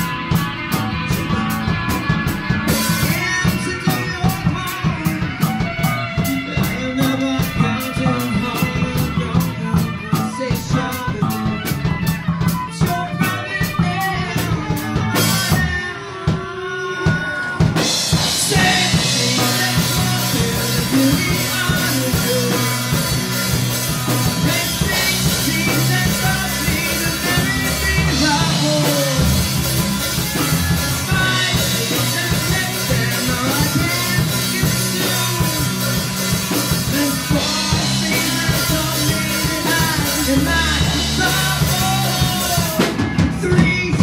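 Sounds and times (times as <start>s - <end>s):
bass line: 0.0s - 16.5s, 17.1s - 44.0s
drum kit beat: 0.0s - 44.0s.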